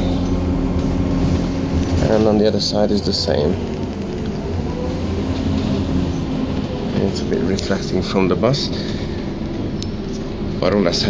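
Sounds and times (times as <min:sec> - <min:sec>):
bus engine rumble: 0:00.0 - 0:11.0
road noise: 0:00.0 - 0:11.0.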